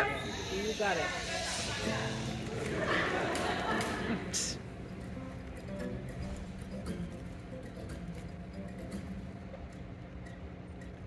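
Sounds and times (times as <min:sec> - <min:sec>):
acoustic guitar strumming: 0:00.0 - 0:09.7.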